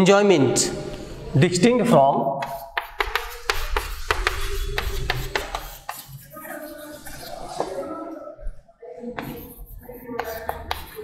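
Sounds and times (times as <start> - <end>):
chalk tapping and scraping on blackboard: 2.4 - 7.9, 9.1 - 11.0.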